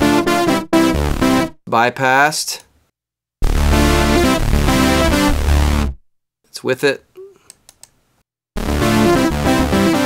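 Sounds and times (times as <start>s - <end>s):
faint clicks: 7.4s - 8.0s.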